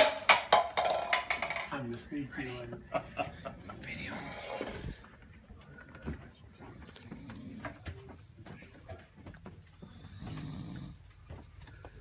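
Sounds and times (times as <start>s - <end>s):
man snoring: 9.9s - 11.0s.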